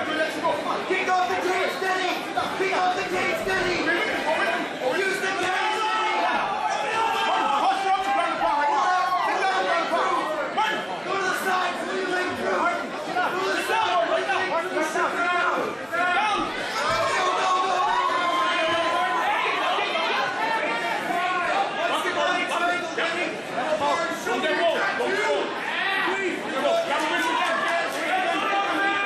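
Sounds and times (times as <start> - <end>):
crowd shouting and talking: 0.0 - 29.0.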